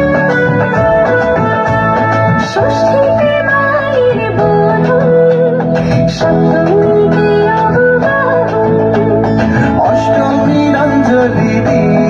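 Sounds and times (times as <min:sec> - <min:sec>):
instrumental backing: 0:00.0 - 0:12.0.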